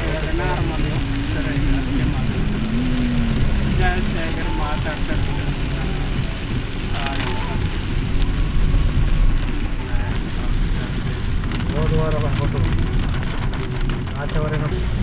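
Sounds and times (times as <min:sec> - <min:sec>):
people talking: 0:00.0 - 0:09.0, 0:09.7 - 0:13.4, 0:14.1 - 0:15.0
car engine and tyres rumbling: 0:00.0 - 0:15.0
rain hissing and spray: 0:00.0 - 0:15.0.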